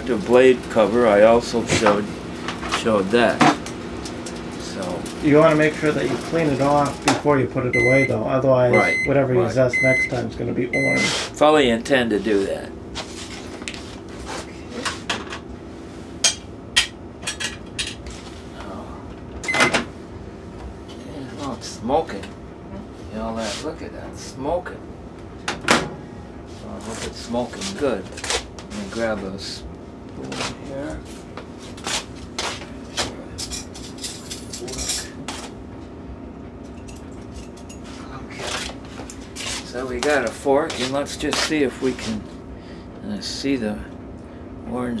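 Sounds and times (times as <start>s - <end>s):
microwave keypad beep: 7.7s - 11.1s, 19.4s - 19.8s.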